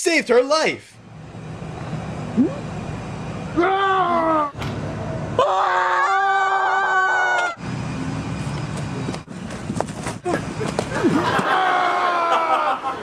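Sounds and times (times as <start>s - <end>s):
person screaming: 3.6s - 4.6s, 5.4s - 7.6s.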